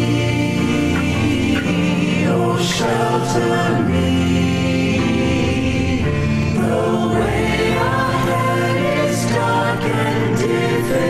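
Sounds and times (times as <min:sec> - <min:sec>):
keyboard: 0:00.0 - 0:11.0
mixed choir singing: 0:00.0 - 0:11.0.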